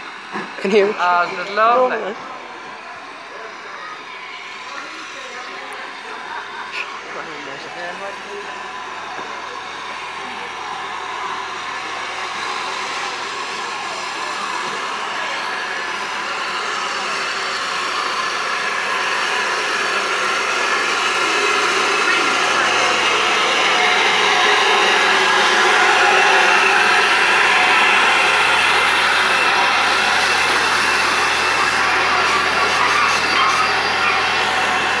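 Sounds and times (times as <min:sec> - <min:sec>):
steam locomotive hissing: 0:00.0 - 0:35.0.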